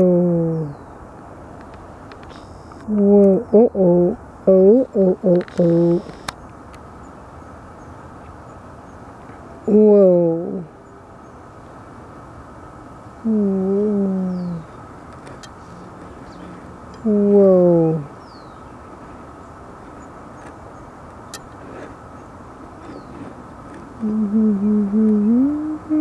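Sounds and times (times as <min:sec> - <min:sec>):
woman humming: 0:00.0 - 0:00.8, 0:02.9 - 0:06.1, 0:09.7 - 0:10.7, 0:13.2 - 0:14.7, 0:17.0 - 0:18.2, 0:24.0 - 0:26.0
faint steady hiss: 0:00.0 - 0:26.0.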